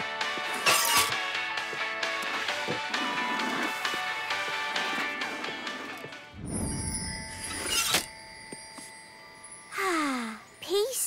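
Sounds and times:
rising whoosh: 6.3s - 7.8s.

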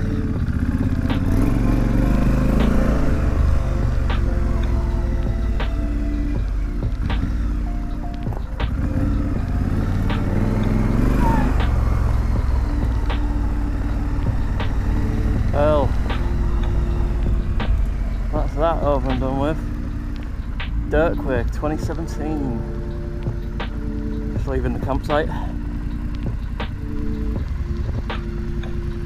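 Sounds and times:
background music: 0.0s - 29.0s
motorcycle engine running: 0.0s - 29.0s.

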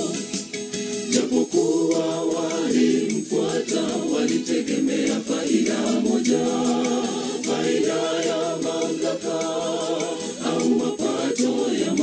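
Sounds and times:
choir singing in harmony: 0.0s - 0.4s, 1.1s - 12.0s.

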